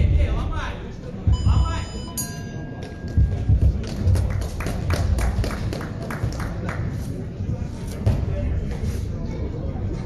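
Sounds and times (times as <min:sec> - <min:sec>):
boxing bell ringing: 0:01.3 - 0:03.8.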